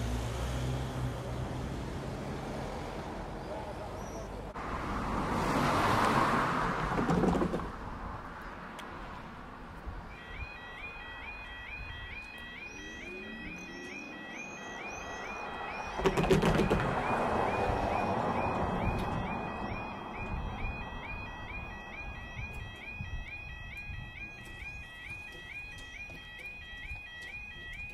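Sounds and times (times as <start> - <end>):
car passing close by: 4.6 - 8.2, 13.5 - 20.3
warbling two-tone warning alarm: 10.1 - 27.9.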